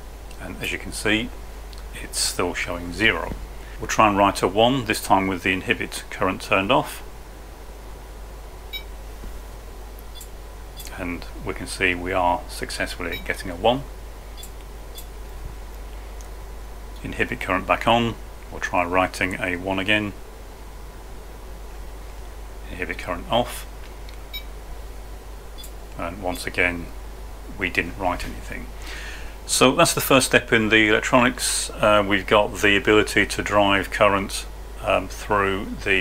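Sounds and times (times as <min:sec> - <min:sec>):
low steady hum: 0:00.0 - 0:36.0.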